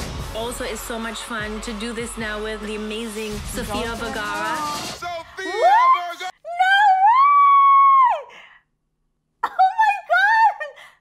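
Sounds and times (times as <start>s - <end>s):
woman screaming excitedly: 5.4s - 8.4s.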